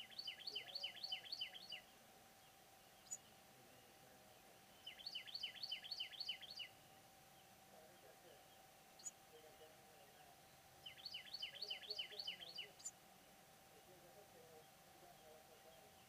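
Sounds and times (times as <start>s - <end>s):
small bird chirping: 0.0s - 13.0s
faint steady hum: 0.0s - 16.0s.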